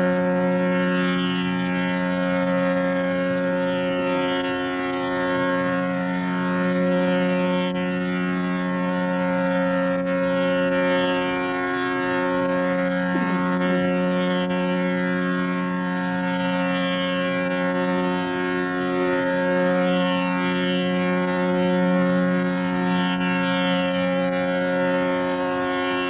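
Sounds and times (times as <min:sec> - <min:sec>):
tanpura and harmonium drone: 0:00.0 - 0:26.0.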